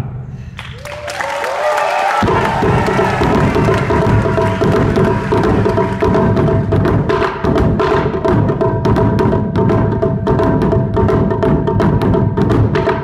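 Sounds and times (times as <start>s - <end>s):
taiko drums: 2.2s - 13.0s.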